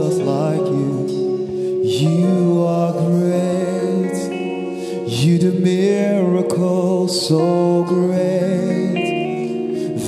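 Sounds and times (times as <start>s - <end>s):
man singing lead: 0.0s - 10.0s.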